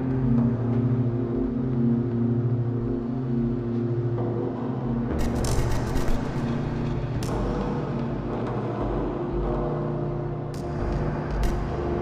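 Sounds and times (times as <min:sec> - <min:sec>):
dark ambient drone: 0:00.0 - 0:12.0.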